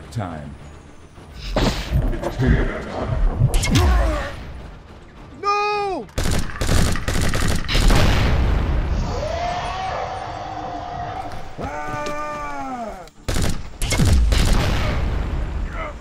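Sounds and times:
rapid gunfire: 0:03.2 - 0:08.8, 0:13.2 - 0:15.3.

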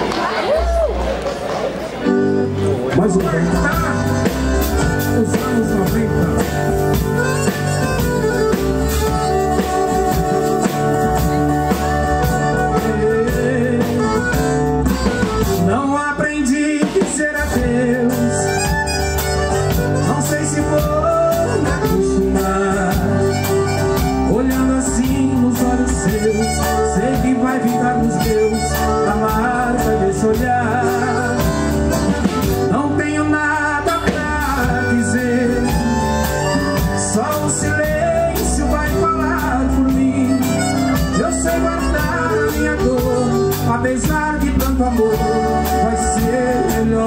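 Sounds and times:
acoustic guitar: 0:00.0 - 0:47.0
drum kit: 0:00.0 - 0:47.0
electric bass: 0:00.0 - 0:47.0
piano accordion melody: 0:02.1 - 0:16.1, 0:17.4 - 0:47.0.

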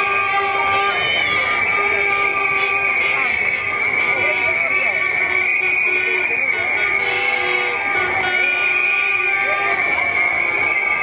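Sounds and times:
crowd voices: 0:00.0 - 0:11.0
whistles and horns blown: 0:00.0 - 0:11.0.

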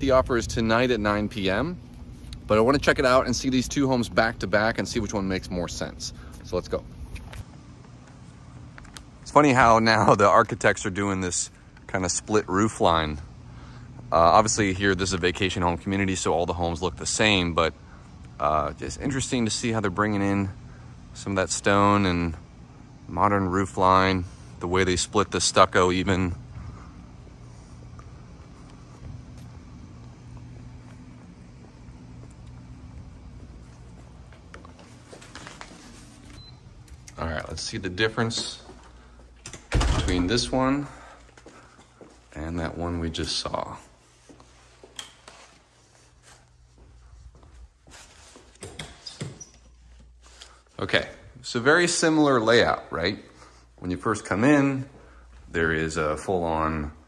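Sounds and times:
door swinging open: 0:39.4 - 0:40.5.

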